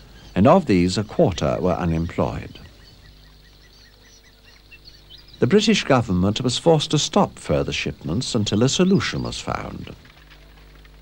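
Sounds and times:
bird chirping rapidly: 0.0 - 10.1
faint low hum: 0.0 - 11.0.

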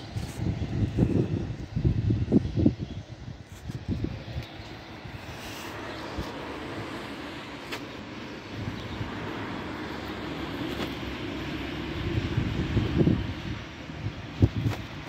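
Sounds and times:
wind buffeting the microphone: 0.0 - 7.1, 8.4 - 15.0
distant engine rumble: 0.0 - 15.0.

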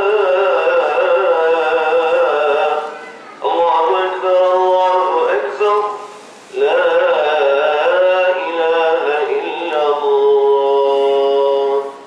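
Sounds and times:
man chanting prayer over loudspeakers: 0.0 - 12.0.

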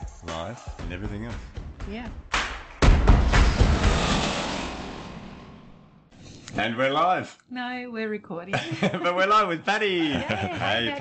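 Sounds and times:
rushing roar with deep rumble: 3.3 - 6.1.

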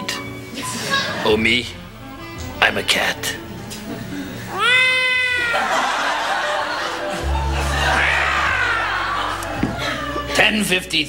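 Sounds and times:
cat meowing: 4.5 - 5.7.

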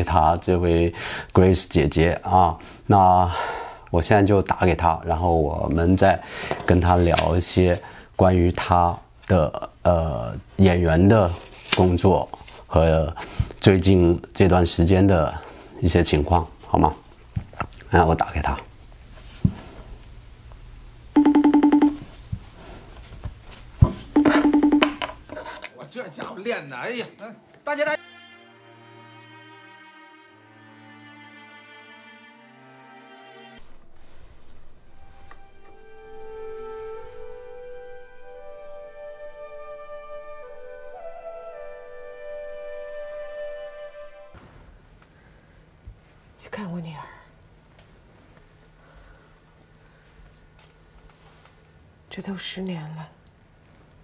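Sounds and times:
pulsing phone call tone: 21.2 - 22.0, 24.2 - 25.0.

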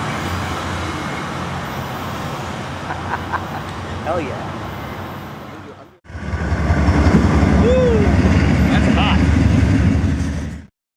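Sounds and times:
loud low engine rumble: 0.0 - 10.7
short rising-and-falling tones: 6.1 - 10.2.

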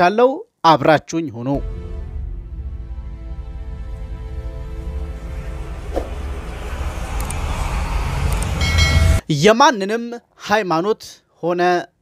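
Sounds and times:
deep rumbling swell: 1.6 - 9.2
short bright chime: 8.6 - 9.2.

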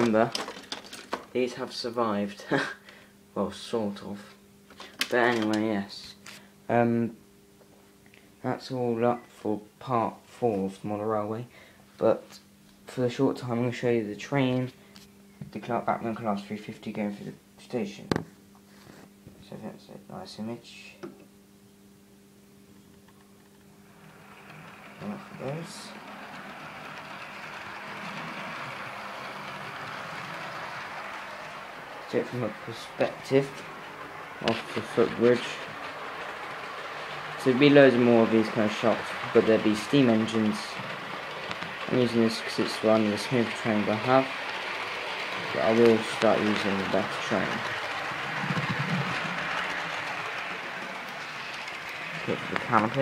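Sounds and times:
wheel and rail noise: 0.0 - 2.0, 4.7 - 5.9, 22.8 - 53.0
model train motor whirring: 23.5 - 53.0.

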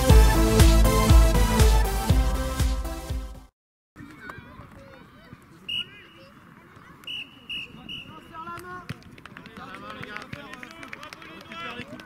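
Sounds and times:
children calling and shouting: 4.0 - 7.8.

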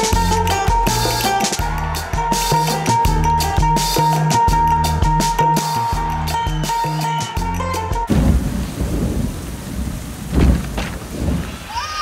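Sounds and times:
heavy rain pouring: 8.1 - 12.0
thunder rumbling: 8.1 - 12.0.

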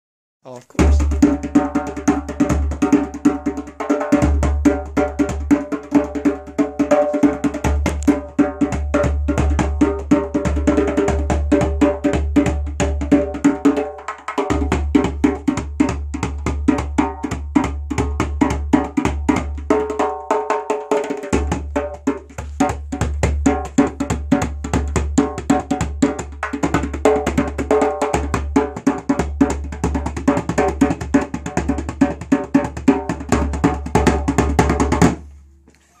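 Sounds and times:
djembe played with hands: 0.8 - 35.3.

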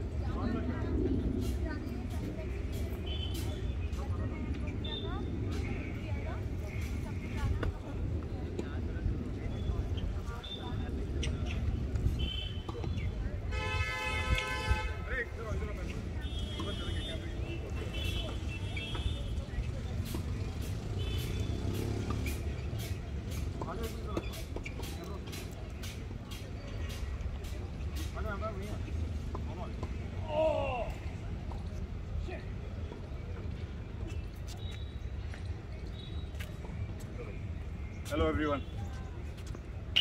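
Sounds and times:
faint indistinct voices: 0.0 - 40.0.

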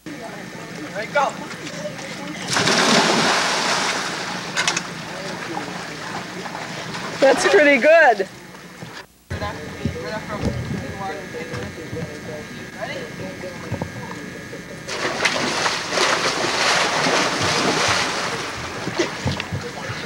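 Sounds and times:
splashing and churning water: 2.4 - 7.5, 14.9 - 20.0.

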